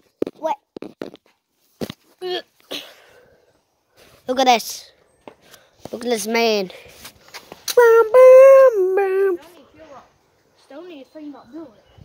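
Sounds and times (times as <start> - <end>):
child's long high call: 7.8 - 9.4.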